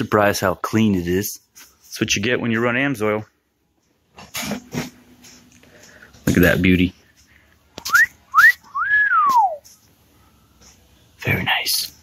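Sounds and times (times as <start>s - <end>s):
person whistling: 7.8s - 9.8s.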